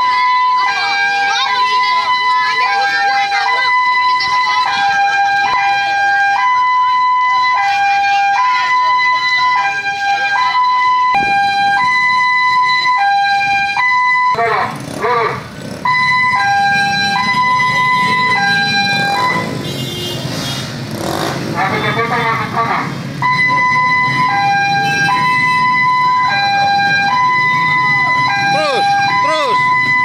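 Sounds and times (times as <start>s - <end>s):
voices: 0.0s - 6.1s, 14.3s - 15.8s, 21.4s - 25.2s, 27.6s - 30.0s
two-tone siren: 0.0s - 20.4s, 21.6s - 22.6s, 23.2s - 30.0s.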